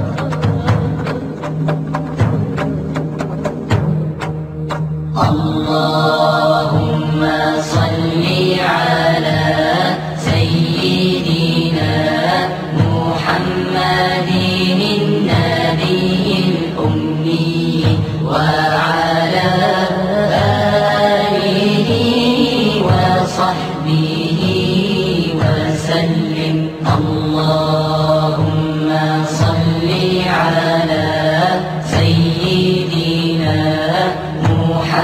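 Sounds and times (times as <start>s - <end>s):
steady low drone: 0.0s - 35.0s
voices chanting held notes: 4.6s - 35.0s.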